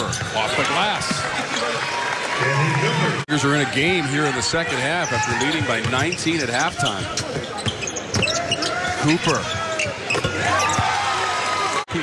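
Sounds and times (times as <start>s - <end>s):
shoe squeaks and voices: 4.7s - 10.9s.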